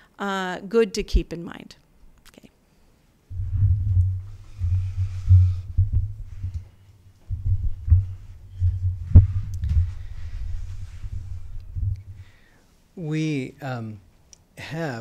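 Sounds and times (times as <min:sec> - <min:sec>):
microphone handling rumble: 0:03.3 - 0:12.4.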